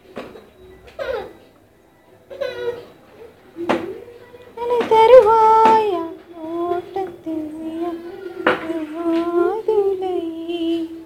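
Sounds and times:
person singing wordless tune: 4.5s - 11.0s.

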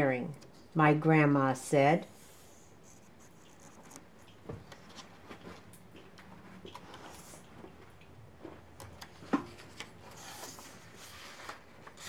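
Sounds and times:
book pages being handled: 8.4s - 12.0s.

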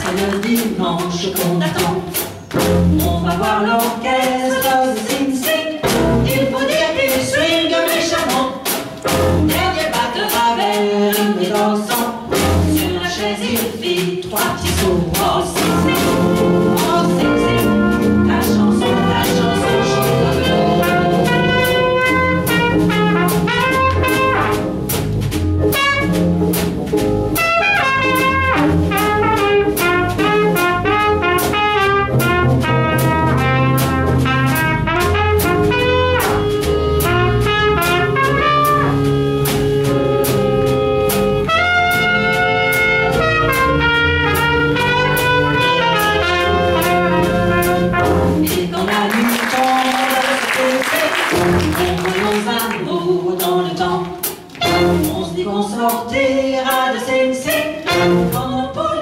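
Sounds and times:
drum kit: 0.0s - 58.8s
bass: 0.0s - 59.0s
piano: 0.0s - 59.0s
trumpet melody: 15.6s - 48.6s, 49.4s - 52.7s, 54.6s - 55.4s, 57.5s - 58.7s.

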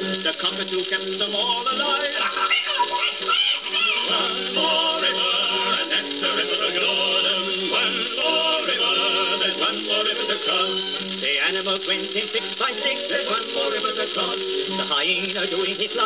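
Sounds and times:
old record band music: 0.0s - 16.0s.

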